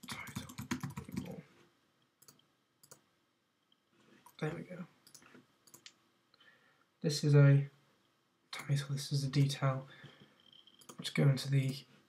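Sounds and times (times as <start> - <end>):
keyboard typing: 0.0 - 1.4, 10.5 - 11.8
key or mouse clicks: 5.1 - 6.0.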